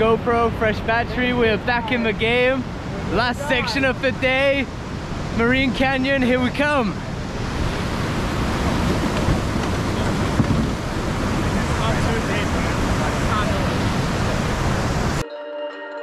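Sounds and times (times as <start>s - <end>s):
rushing whitewater: 0.0s - 15.2s
music: 15.2s - 16.0s.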